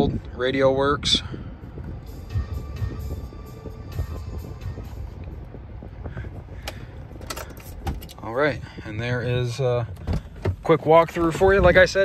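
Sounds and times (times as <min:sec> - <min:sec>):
music from car radio: 0:00.0 - 0:12.0.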